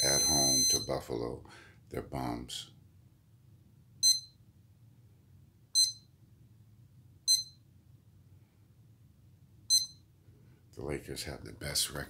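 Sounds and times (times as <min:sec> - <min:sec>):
high electronic beeps: 0:00.0 - 0:00.9.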